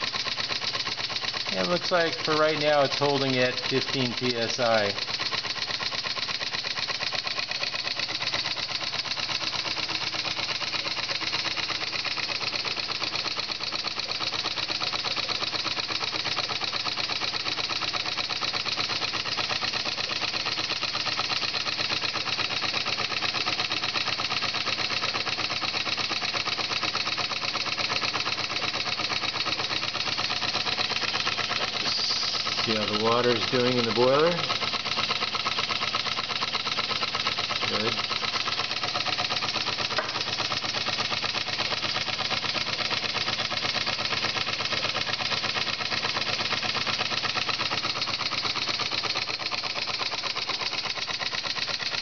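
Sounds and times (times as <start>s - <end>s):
model steam engine running fast: 0.0s - 52.0s.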